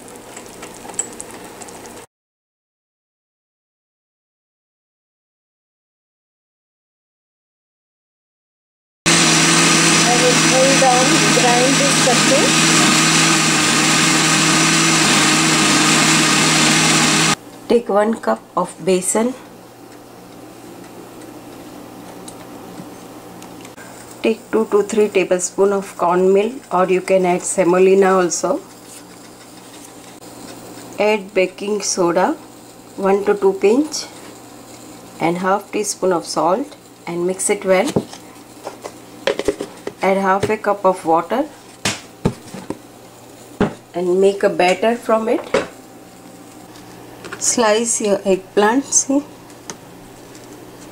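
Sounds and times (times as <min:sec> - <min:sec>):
blender running: 0:09.1 - 0:17.4.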